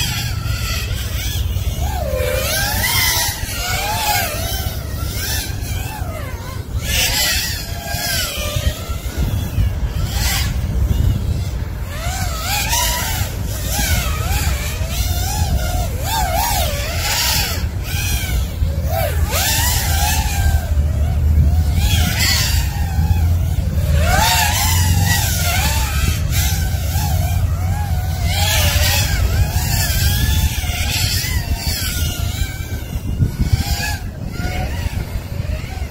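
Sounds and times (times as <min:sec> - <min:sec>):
drone motors whining: 0:00.0 - 0:35.9.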